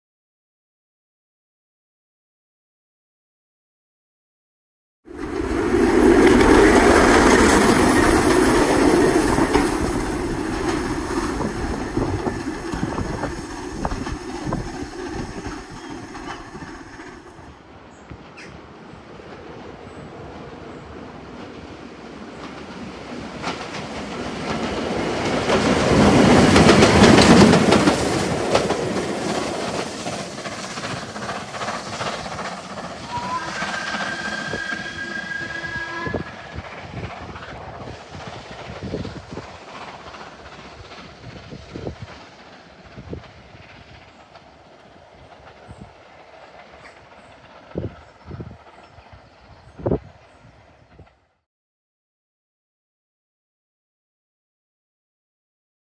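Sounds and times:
steam train passing: 0:05.1 - 0:51.4
faint whistle-like tone: 0:33.0 - 0:36.6.

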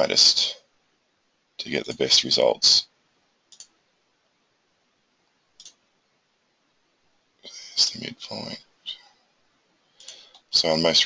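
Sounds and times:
faint computer mouse click: 0:03.5 - 0:03.8, 0:05.6 - 0:05.8.

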